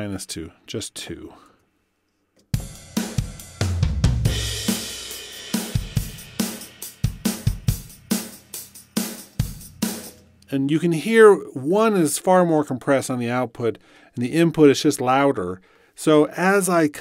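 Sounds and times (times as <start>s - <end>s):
snare drum: 2.6s - 10.2s
hi-hat: 4.5s - 10.2s.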